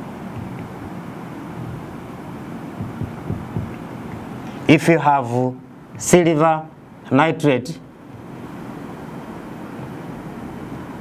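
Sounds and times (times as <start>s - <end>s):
soft low knocks: 0.0s - 4.4s
marker rubbing on whiteboard: 1.6s - 2.0s, 2.8s - 4.3s.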